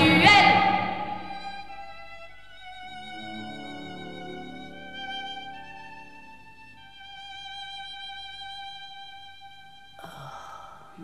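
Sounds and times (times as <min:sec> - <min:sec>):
violin long high note: 0:00.0 - 0:06.7.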